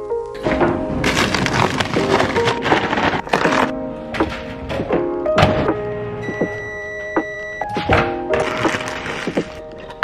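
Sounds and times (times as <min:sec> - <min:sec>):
background music: 0:00.0 - 0:10.0
high microwave beep: 0:06.2 - 0:07.9.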